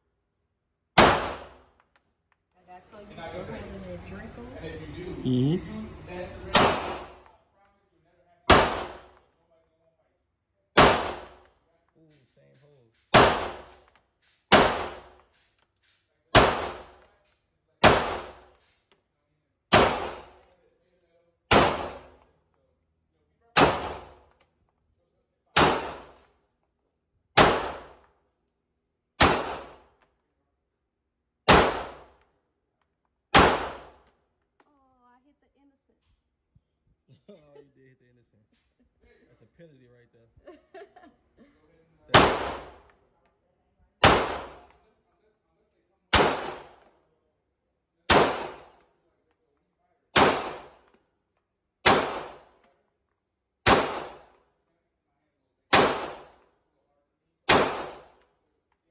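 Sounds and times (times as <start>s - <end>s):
pistol shots echoing: 1.0s - 1.8s, 6.4s - 7.3s, 8.5s - 9.2s, 10.8s - 11.5s, 13.0s - 15.4s, 16.3s - 17.1s, 17.8s - 18.6s, 19.7s - 20.5s, 21.5s - 22.3s, 23.6s - 24.3s, 25.6s - 26.3s, 27.4s - 28.1s, 29.2s - 30.0s, 31.4s - 32.2s, 33.3s - 34.1s, 42.1s - 43.0s, 44.0s - 44.8s, 46.1s - 46.9s, 48.1s - 48.8s, 50.1s - 51.0s, 51.8s - 52.6s, 53.6s - 54.4s, 55.7s - 56.4s, 57.5s - 58.2s.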